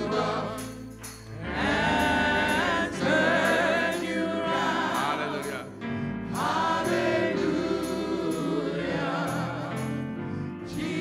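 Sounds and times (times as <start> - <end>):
gospel choir singing: 0.0 - 11.0
instrumental accompaniment: 0.0 - 11.0.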